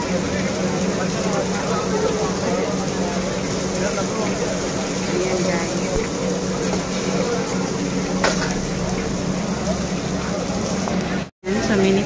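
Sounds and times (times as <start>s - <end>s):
faint crowd chatter: 0.0s - 12.0s
kitchen hum and rumble: 0.0s - 12.0s.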